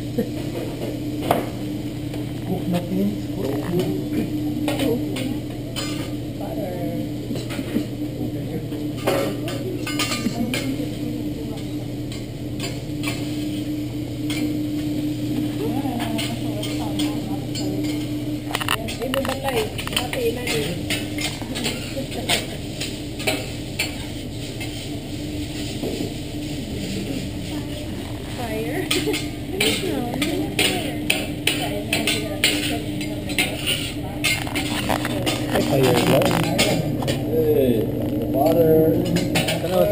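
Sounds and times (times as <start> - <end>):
food sizzling: 0.0 - 39.9
steady low hum: 0.0 - 39.9
metal spatulas scraping griddle: 18.6 - 27.6, 28.9 - 37.2.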